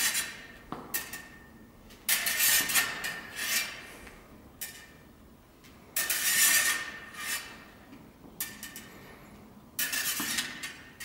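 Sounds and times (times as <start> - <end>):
sword blades scraping: 2.1 - 3.9, 6.0 - 7.7.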